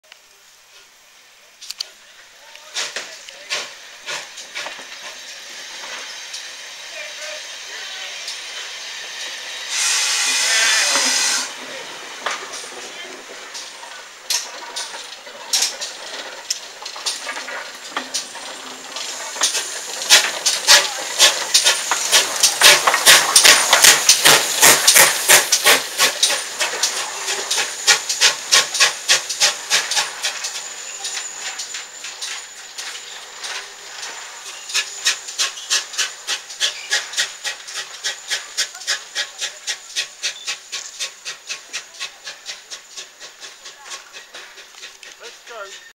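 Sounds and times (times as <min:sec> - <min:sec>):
steam hissing: 0:00.2 - 0:45.9
train running gear clanking: 0:02.4 - 0:45.9.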